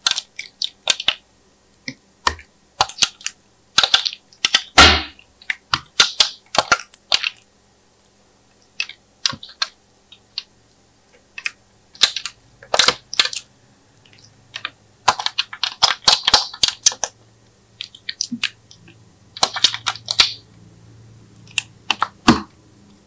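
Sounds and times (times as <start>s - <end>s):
plastic tray clicking and crackling: 0.0s - 1.2s, 1.9s - 7.4s, 11.4s - 13.5s, 14.1s - 17.2s, 17.8s - 20.4s, 21.5s - 22.5s.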